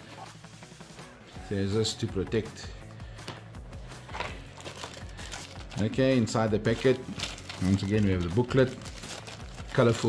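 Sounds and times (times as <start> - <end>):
plastic bag crinkling: 4.1 - 6.0, 6.6 - 10.0.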